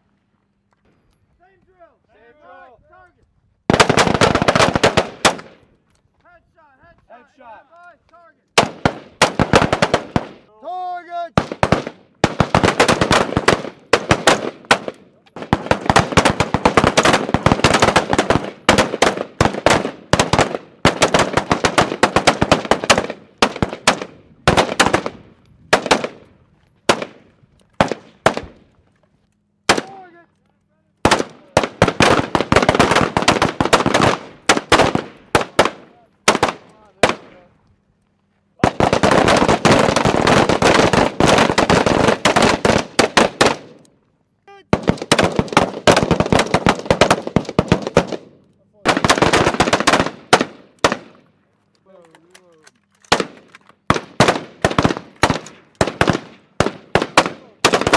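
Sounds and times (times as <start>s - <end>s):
rapid gunfire: 3.7s - 5.6s, 8.6s - 10.4s, 11.4s - 26.2s, 31.0s - 37.3s, 38.6s - 43.7s, 44.7s - 51.2s, 53.1s - 57.9s.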